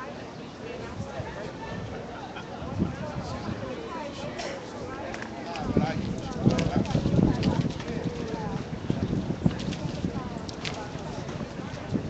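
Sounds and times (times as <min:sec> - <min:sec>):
faint voices: 0:00.0 - 0:12.0
street noise: 0:00.0 - 0:12.0
wind buffeting microphone: 0:00.7 - 0:12.0.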